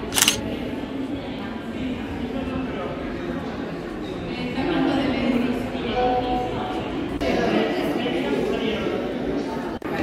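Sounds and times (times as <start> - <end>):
indistinct chatter of people: 0.0 - 10.0
camera shutter click: 0.1 - 0.4.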